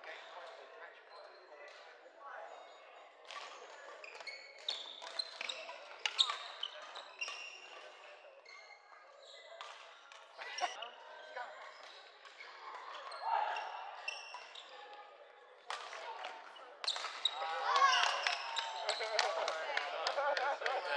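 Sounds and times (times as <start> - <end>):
sneakers squeaking: 3.4 - 15.1, 15.7 - 19.6.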